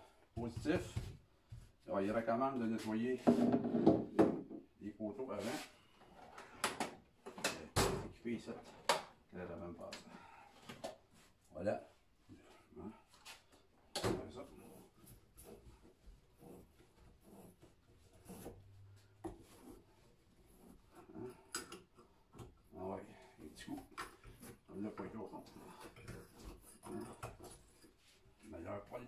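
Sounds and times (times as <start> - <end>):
rubbing on wood: 14.5 - 21.3.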